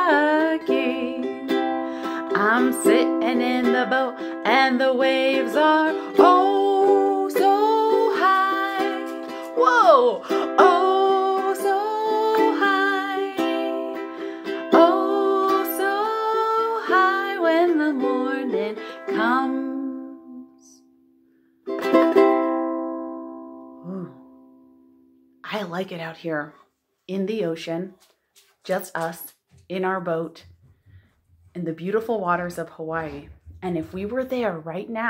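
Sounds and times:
ukulele strumming: 0.0 - 20.5, 21.7 - 24.5
woman singing: 0.0 - 20.8.

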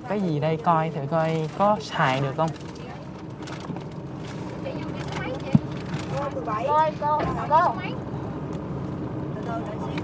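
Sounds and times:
low bus interior hum: 0.0 - 10.0.

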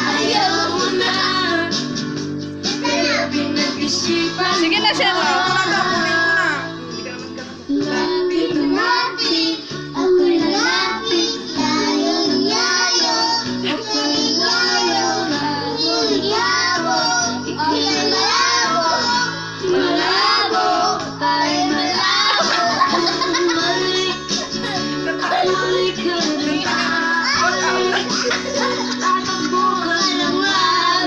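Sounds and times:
young child singing: 0.0 - 1.8, 2.6 - 6.7, 7.7 - 31.0
backing track music: 0.0 - 31.0.

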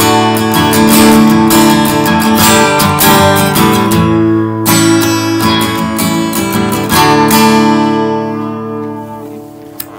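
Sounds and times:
acoustic guitar strumming chords: 0.0 - 9.9.

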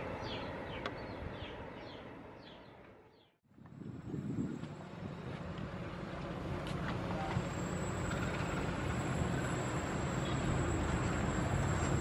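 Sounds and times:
train rumbling: 3.7 - 12.0.

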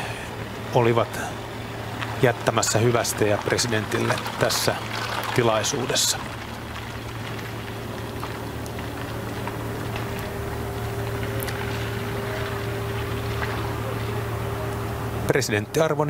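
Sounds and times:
constant low drone: 0.0 - 16.0.

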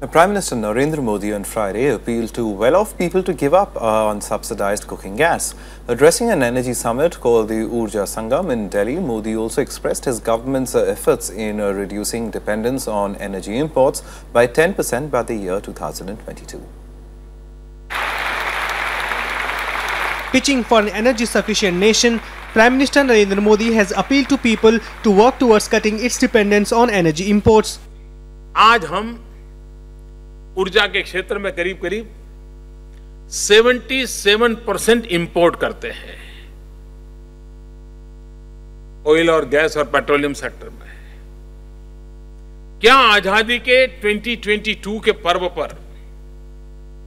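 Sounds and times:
electrical mains hum: 0.0 - 47.0
audience applauding: 17.9 - 27.0
man's voice: 20.3 - 27.8.

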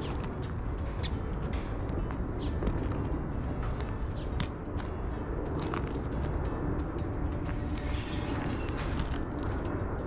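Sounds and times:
footsteps crunching on gravel: 0.0 - 6.5, 7.4 - 9.8
low rumble of city traffic: 0.0 - 10.0.

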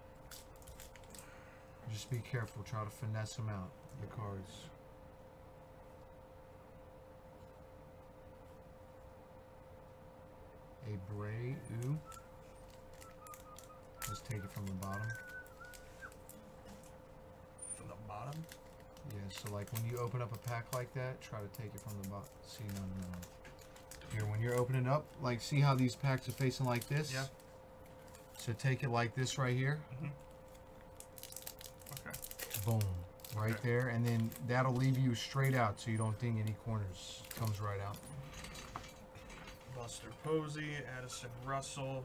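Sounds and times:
foil wrapper crinkling and tearing: 0.2 - 1.4, 11.7 - 16.9, 17.8 - 38.1
light clicks and crackles: 18.1 - 28.5, 30.5 - 36.6, 37.2 - 39.9.

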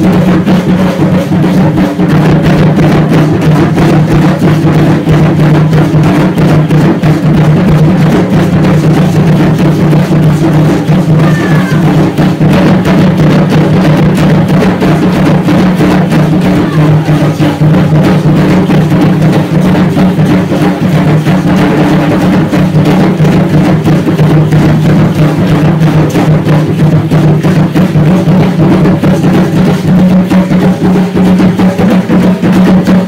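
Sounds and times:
drum-led dance music: 0.0 - 33.0.

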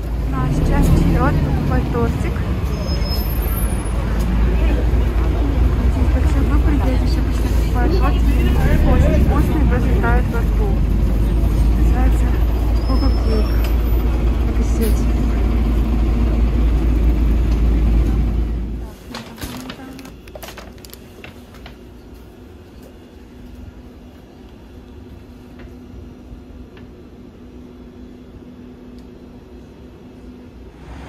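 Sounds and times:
chatter of passers-by: 0.0 - 20.4
low traffic rumble: 0.0 - 31.0.

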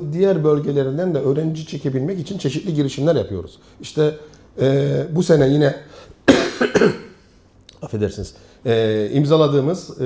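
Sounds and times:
man coughing: 6.3 - 7.2.

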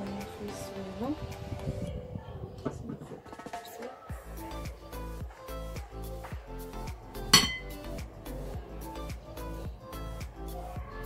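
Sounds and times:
background music with steady beat: 3.4 - 11.0
knife clinking against ceramic bowl: 7.4 - 7.8.

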